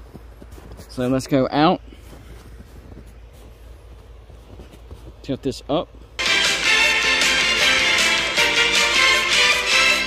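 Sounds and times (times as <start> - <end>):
footsteps crunching in snow: 0.0 - 6.2.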